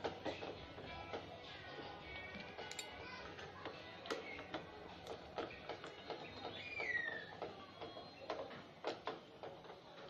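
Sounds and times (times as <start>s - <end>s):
screwdriver clicking on metal: 2.6s - 3.0s.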